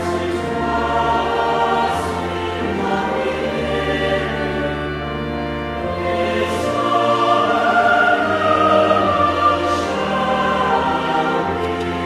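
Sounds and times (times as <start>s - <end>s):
choir singing: 0.0s - 12.0s
pipe organ sustained low notes: 0.0s - 12.0s.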